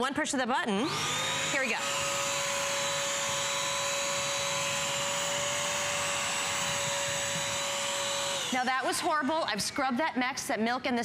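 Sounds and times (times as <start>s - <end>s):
vacuum motor whine and suction: 0.8s - 9.9s.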